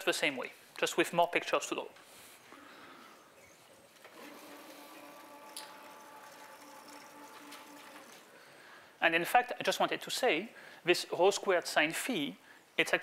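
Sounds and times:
chalkboard panels sliding hum: 0:04.0 - 0:08.3.

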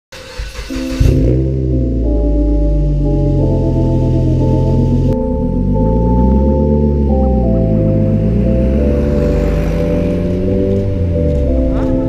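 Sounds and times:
background music with sustained notes: 0:00.2 - 0:12.0
car pulling away and accelerating: 0:00.2 - 0:12.0.

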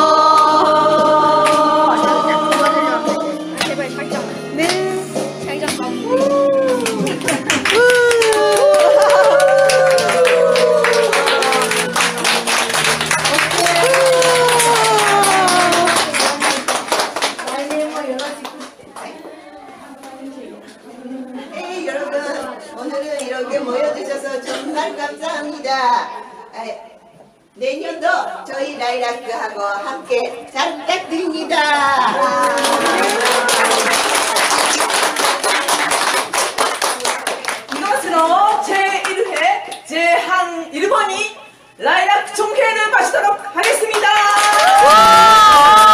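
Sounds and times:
people clapping hands: 0:00.1 - 0:04.0, 0:04.6 - 0:19.2, 0:32.2 - 0:39.9, 0:43.6 - 0:45.9
audience applauding: 0:06.6 - 0:18.8, 0:32.2 - 0:38.0, 0:43.6 - 0:45.9.

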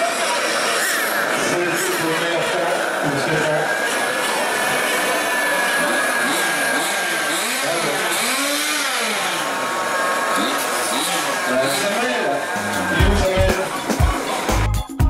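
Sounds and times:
rc car engines whining: 0:00.0 - 0:14.7.

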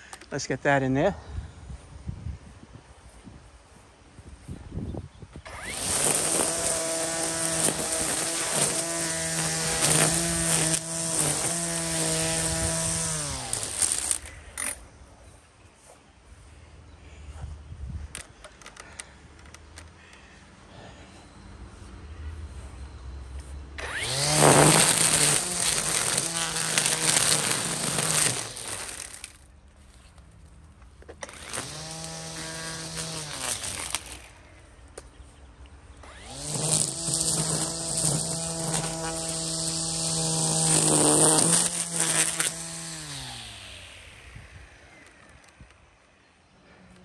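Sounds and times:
string trimmer motor whine: 0:05.4 - 0:14.8, 0:23.8 - 0:29.5, 0:31.0 - 0:34.6, 0:36.0 - 0:46.0
trimmer line slapping through weeds: 0:05.5 - 0:14.8, 0:23.8 - 0:29.4, 0:31.2 - 0:34.4, 0:36.1 - 0:43.8.

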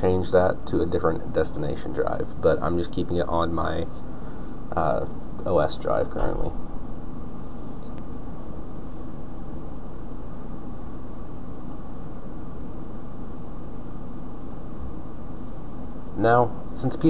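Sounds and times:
low hum and hiss: 0:00.0 - 0:17.0.

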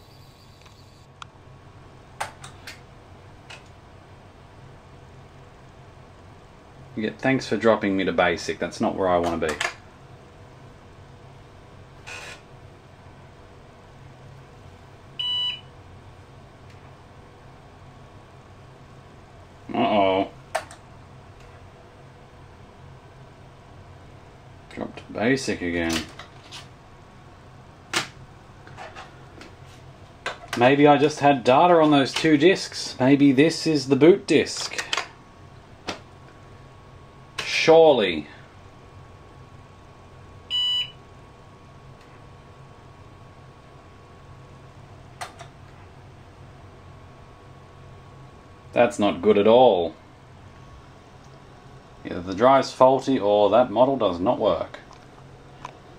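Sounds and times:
short electronic beep: 0:00.0 - 0:01.1
steady low hum: 0:00.0 - 0:55.9.

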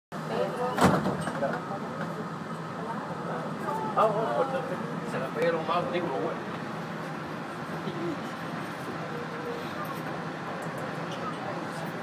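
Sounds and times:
people talking: 0:00.2 - 0:06.6, 0:08.8 - 0:12.0.

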